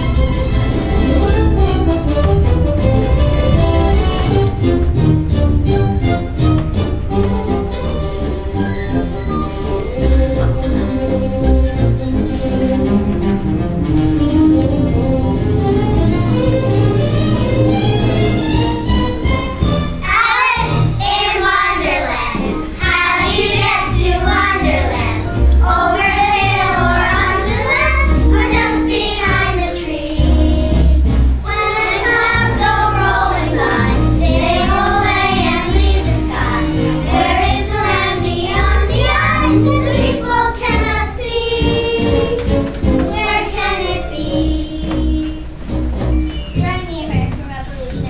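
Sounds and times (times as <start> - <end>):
children singing in unison: 20.0 - 45.5.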